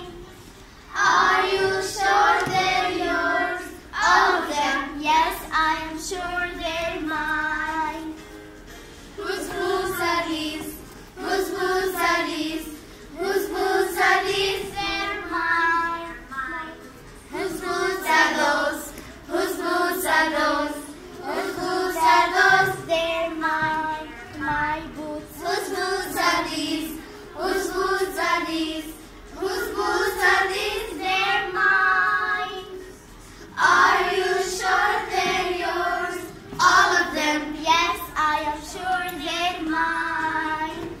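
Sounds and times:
girls singing together: 0.0 - 8.4, 9.1 - 41.0.

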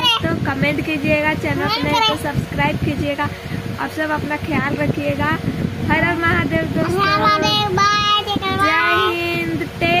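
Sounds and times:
child and woman singing: 6.7 - 10.0.

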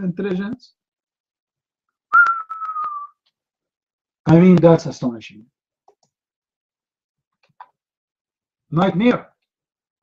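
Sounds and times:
person whistling a note: 2.1 - 3.2.

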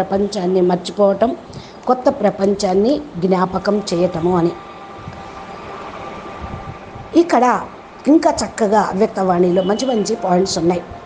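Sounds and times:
faint high hum: 0.0 - 11.0
steady background hiss: 0.0 - 11.0.

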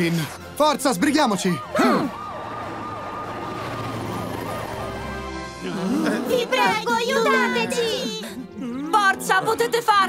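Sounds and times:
background music: 0.0 - 10.0
cartoon siren wailing: 1.2 - 5.2.

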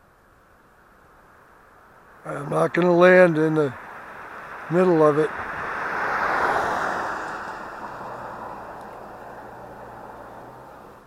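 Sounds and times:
vehicle passing on road: 0.2 - 11.0.

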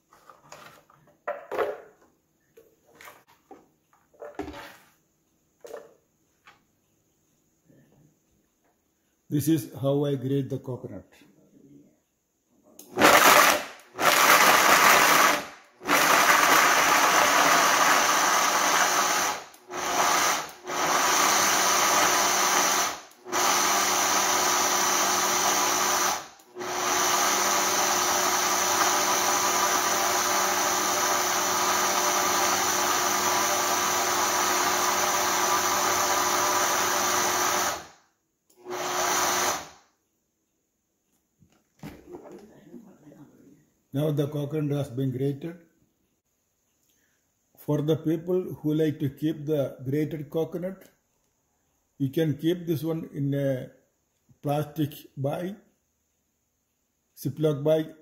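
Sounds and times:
blender grinding: 12.8 - 39.8.

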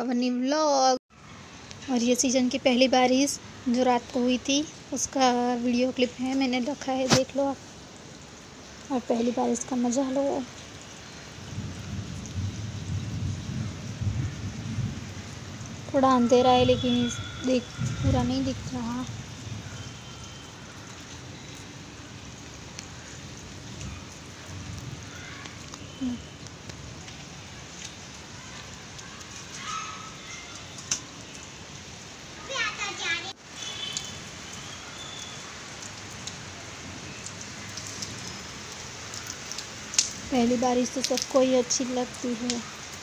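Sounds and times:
rain on a rooftop: 0.1 - 43.0.

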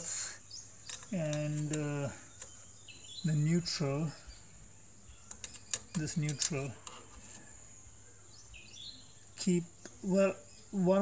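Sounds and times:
bird chirp: 0.0 - 11.0.

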